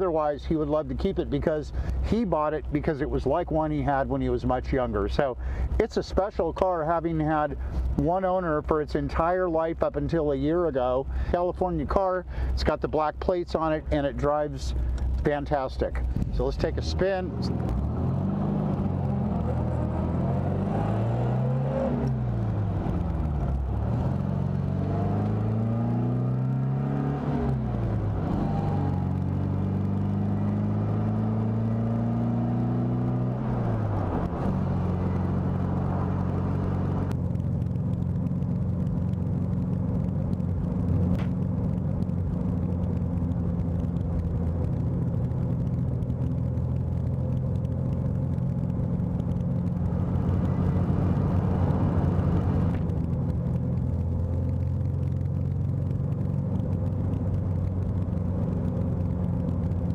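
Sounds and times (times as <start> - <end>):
car engine accelerating and cruising: 0.0 - 59.9.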